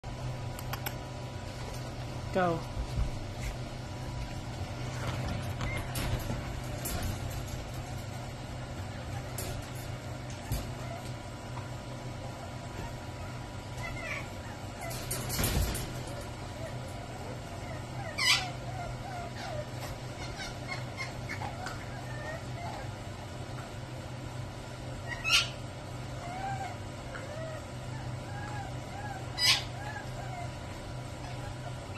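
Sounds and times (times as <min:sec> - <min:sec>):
low mechanical hum: 0:00.0 - 0:31.9
puppy whimpering: 0:05.2 - 0:07.2, 0:08.9 - 0:11.4, 0:12.7 - 0:15.7, 0:16.3 - 0:23.0, 0:25.0 - 0:31.9
puppy squealing: 0:13.8 - 0:15.1, 0:16.6 - 0:22.9, 0:25.0 - 0:25.6, 0:26.2 - 0:30.6.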